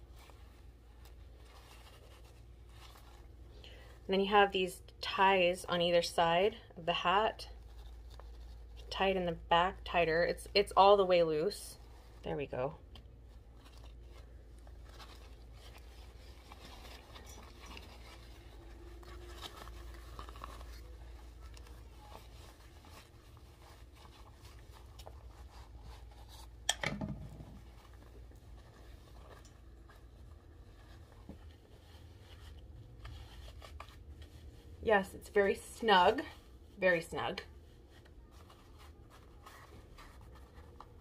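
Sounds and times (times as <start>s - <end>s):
fabric cap rustling and scraping: 0.0s - 41.0s.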